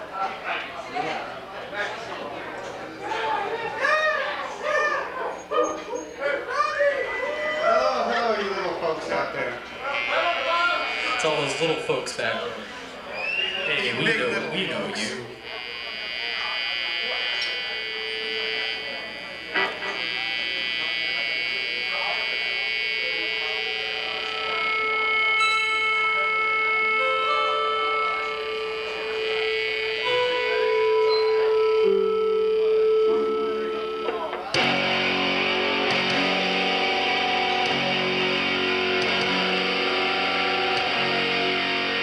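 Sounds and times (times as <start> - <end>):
band sustained electronic tones: 7.8 - 42.0.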